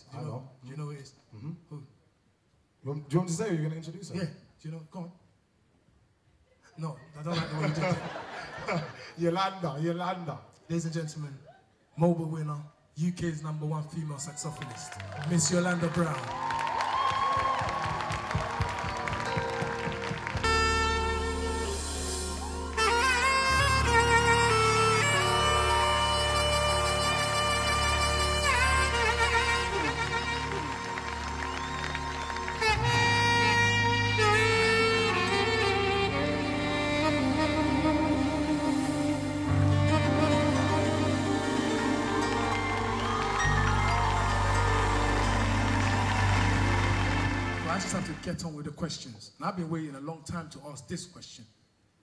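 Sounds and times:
saxophone playing: 0:17.3 - 0:48.2
steady low bass: 0:32.1 - 0:48.2.

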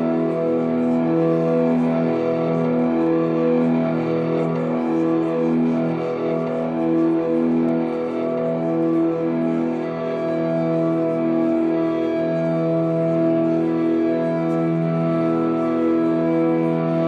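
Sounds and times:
ambient drone music: 0:00.0 - 0:17.0.

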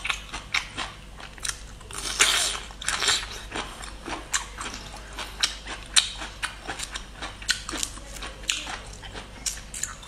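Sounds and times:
crunchy bites and chews: 0:00.0 - 0:10.0.

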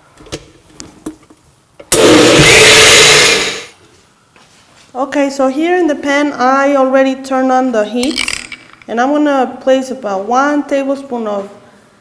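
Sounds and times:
blender running: 0:01.9 - 0:03.7.

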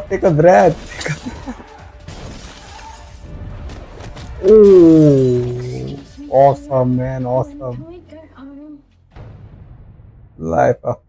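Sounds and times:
trailer music: 0:00.0 - 0:11.0
glass shattering: 0:00.7 - 0:03.2
scattering glass debris: 0:00.8 - 0:03.2.

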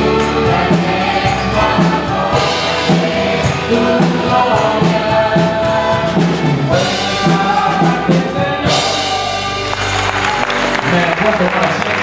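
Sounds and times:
worship band singing with guitars: 0:00.0 - 0:11.0
people clapping: 0:09.6 - 0:12.0.

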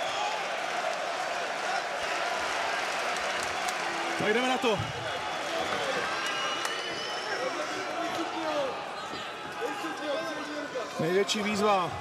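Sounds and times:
arena crowd din: 0:00.0 - 0:12.0.

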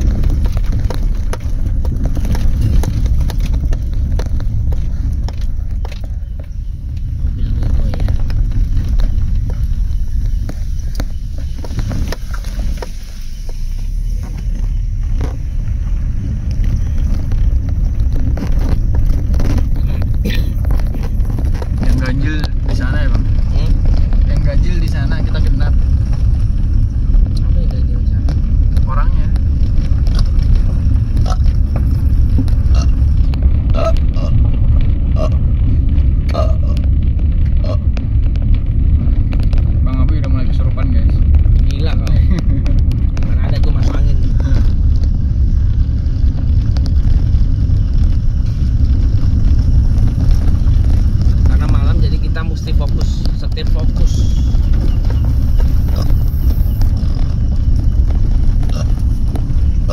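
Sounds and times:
car rumbling over dirt track: 0:00.0 - 0:59.9.

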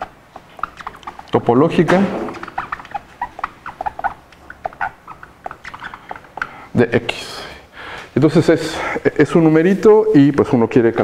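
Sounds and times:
marker pen squeaking on whiteboard: 0:00.0 - 0:07.4.

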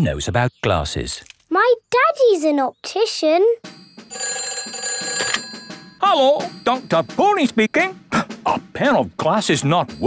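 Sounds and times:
cartoon telephone ringing: 0:04.0 - 0:07.1.

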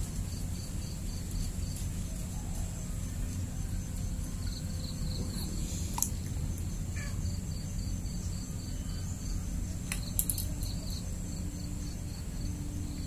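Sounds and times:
insects chirping: 0:00.0 - 0:13.0
low steady rumble: 0:00.0 - 0:13.0.

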